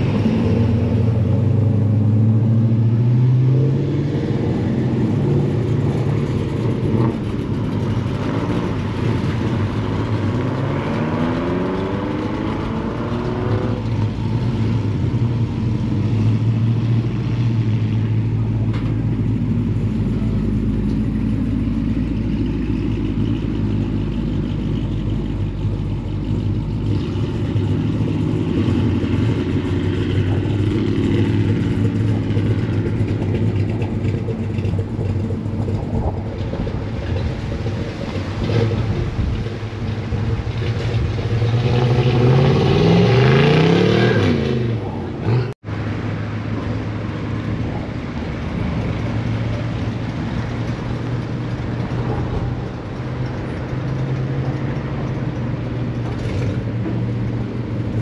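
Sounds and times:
vehicle engine revving: 0.0s - 58.0s.

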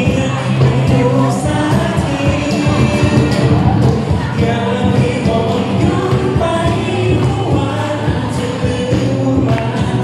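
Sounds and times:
cajon: 0.0s - 10.0s
person singing: 0.0s - 10.0s
strummed acoustic guitar: 0.0s - 10.0s.

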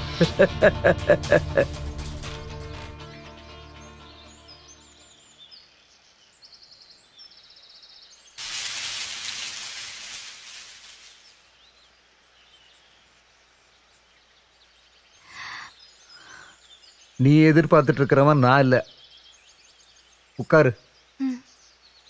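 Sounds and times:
birds chirping and trilling: 0.0s - 22.0s
short bursts of sound: 8.4s - 11.5s.

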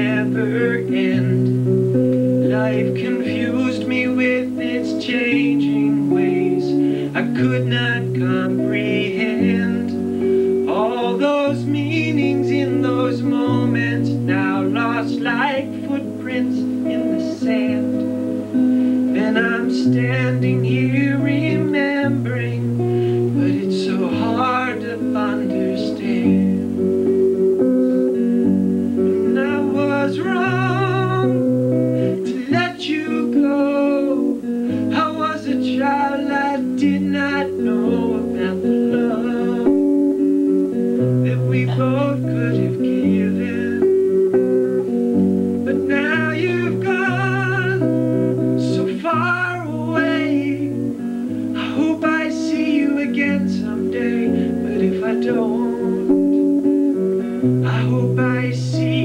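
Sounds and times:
man singing: 0.0s - 26.9s, 28.8s - 45.0s, 45.6s - 59.0s
strummed acoustic guitar: 0.0s - 59.0s.

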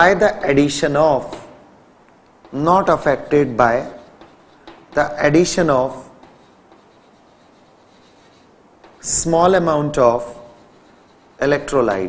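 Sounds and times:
chalk writing on blackboard: 1.0s - 1.6s, 2.4s - 12.0s.

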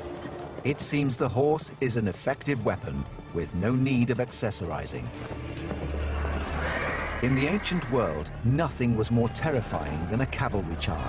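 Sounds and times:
low music drone: 4.6s - 10.1s
horse neighing: 6.0s - 8.3s.

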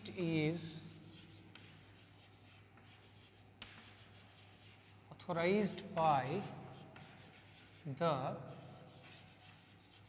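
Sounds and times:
chalk scratching on chalkboard: 0.0s - 10.0s
low steady hum: 0.0s - 10.0s
chalk tapping on chalkboard: 1.1s - 10.0s.

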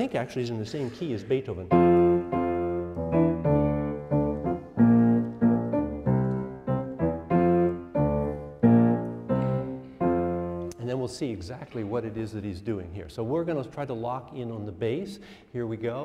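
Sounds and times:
grand piano chords: 1.7s - 10.8s.

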